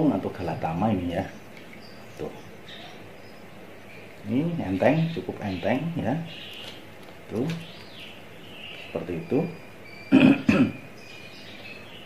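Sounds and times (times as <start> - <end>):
man coughing: 10.1 - 10.8.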